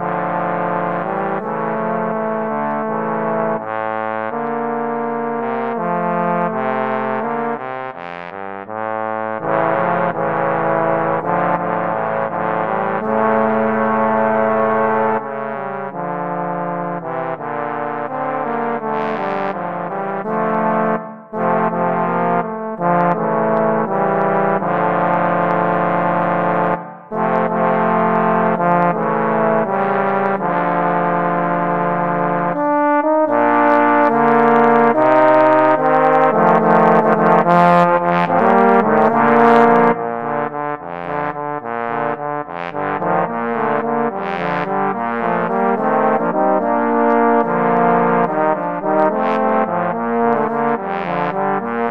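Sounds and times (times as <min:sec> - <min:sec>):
trombones playing in harmony: 0:00.0 - 0:51.9.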